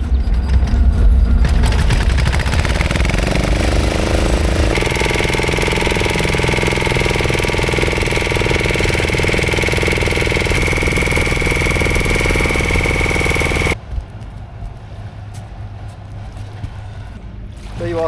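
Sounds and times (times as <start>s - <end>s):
boat engine running: 1.4s - 13.8s
steady high whine: 2.4s - 13.8s.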